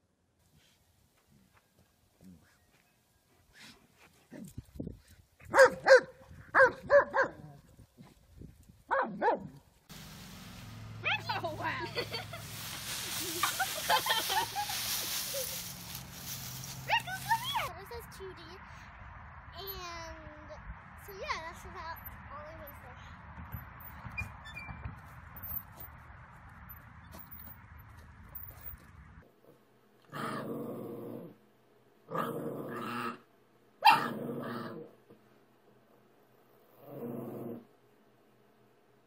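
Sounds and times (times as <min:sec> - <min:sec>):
dog barking: 0:05.5 - 0:07.5, 0:08.9 - 0:09.5, 0:33.8 - 0:34.2
rustling noise: 0:09.8 - 0:17.9, 0:23.4 - 0:29.2
children's voices: 0:16.9 - 0:18.8, 0:19.6 - 0:23.2.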